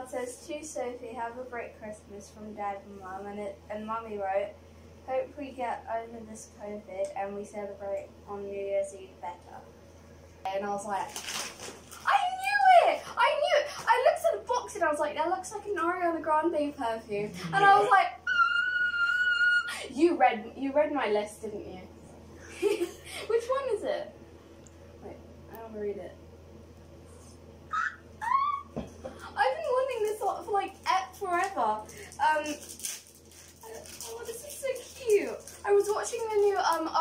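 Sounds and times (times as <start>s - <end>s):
wrapping paper tearing: 10.9s - 12.6s, 31.1s - 37.0s
girl squealing with delight: 17.8s - 19.8s, 27.7s - 28.8s.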